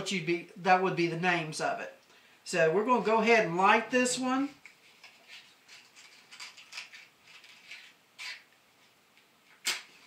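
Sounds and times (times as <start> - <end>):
scratching and handling noises: 4.6 - 10.0.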